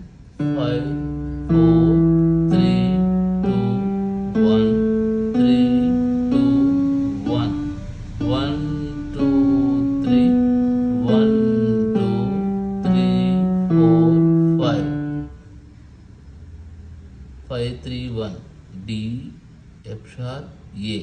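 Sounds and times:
electronic keyboard playing a scale: 0.0s - 16.0s.

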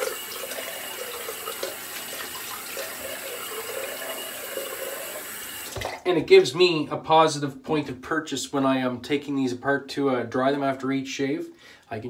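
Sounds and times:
sink tap running: 0.0s - 6.0s.

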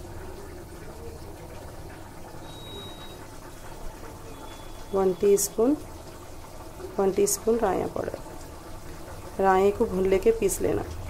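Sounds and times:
meat bubbling in oil: 0.0s - 11.0s.

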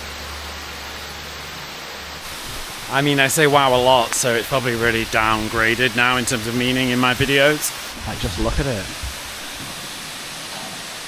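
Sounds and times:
waterfalls rushing: 0.0s - 11.0s.

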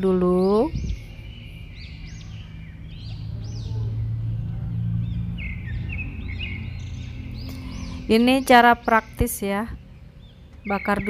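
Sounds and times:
low steady rumble: 0.0s - 11.0s
small birds chirping: 0.0s - 11.0s.

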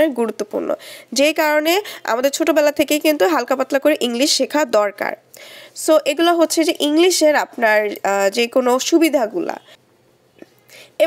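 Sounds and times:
woman narrating: 0.0s - 9.8s.

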